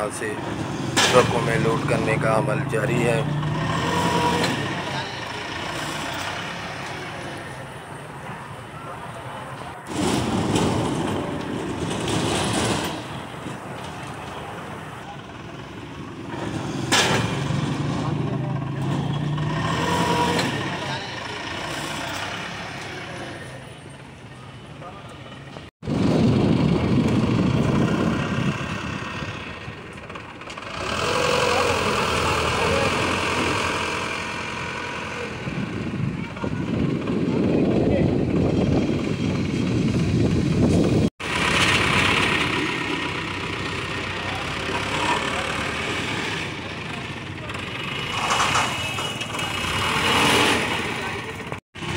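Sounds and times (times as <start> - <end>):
people's voices: 0.0 - 25.7, 27.4 - 40.4, 42.0 - 51.6
forklift engine running: 0.0 - 51.9
street noise: 0.0 - 51.9.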